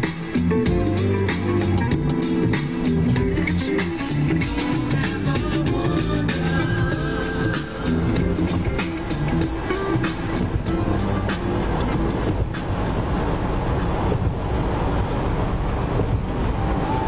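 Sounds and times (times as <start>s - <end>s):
music with guitar and drums: 0.0s - 13.2s
car road noise at speed: 0.0s - 17.0s
wind noise: 0.0s - 17.0s.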